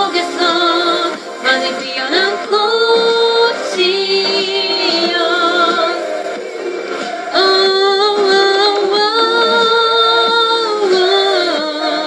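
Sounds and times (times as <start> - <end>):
woman singing a ballad: 0.0 - 6.2, 7.3 - 12.0.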